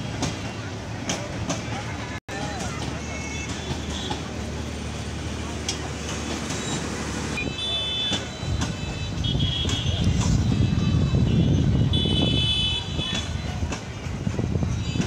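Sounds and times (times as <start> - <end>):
train rolling along track: 0.0 - 15.0.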